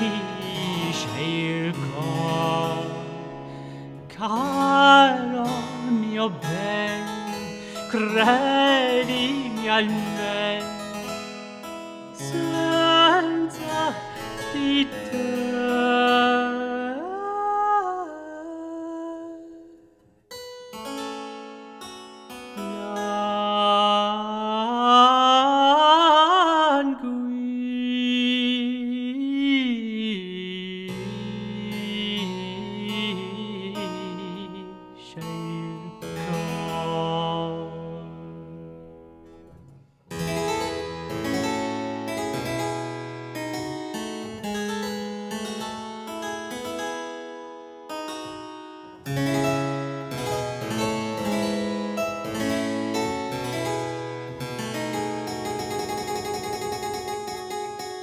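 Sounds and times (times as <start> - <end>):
harpsichord playing: 0.0 - 18.1, 20.3 - 26.7, 30.2 - 58.0
man singing classical long notes: 0.0 - 20.0, 22.5 - 47.0, 48.1 - 57.9.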